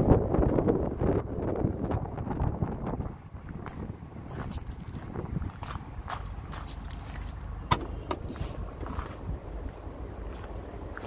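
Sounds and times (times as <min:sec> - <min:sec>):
steady low rumble: 0:00.0 - 0:11.0
tailgate latch click: 0:07.7 - 0:08.2
tailgate lifting: 0:07.7 - 0:08.4.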